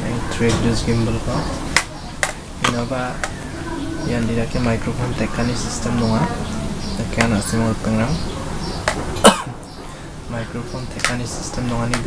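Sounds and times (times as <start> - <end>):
person coughing: 9.2 - 9.6.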